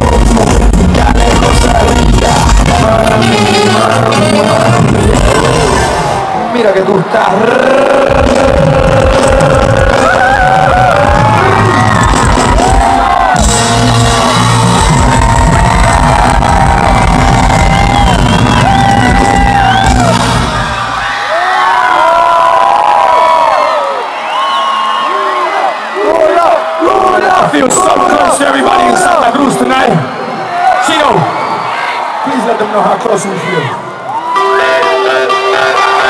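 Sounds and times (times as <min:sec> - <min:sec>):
heavy bass beat: 0:00.0 - 0:06.2, 0:07.9 - 0:20.9
vocal line: 0:00.0 - 0:06.4, 0:07.3 - 0:20.4, 0:34.3 - 0:36.0
crowd cheering: 0:01.0 - 0:36.0.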